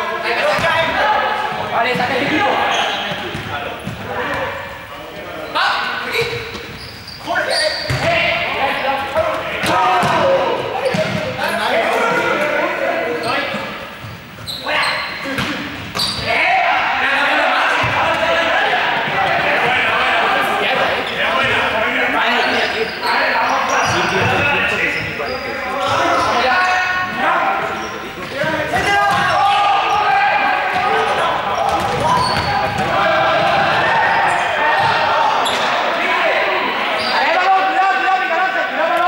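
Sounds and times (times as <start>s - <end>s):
balls bouncing on hall floor: 0.4s - 4.5s, 7.8s - 8.4s, 9.0s - 11.5s, 15.2s - 16.4s, 28.2s - 34.1s, 34.7s - 35.7s
young people shouting in a hall: 28.7s - 39.0s.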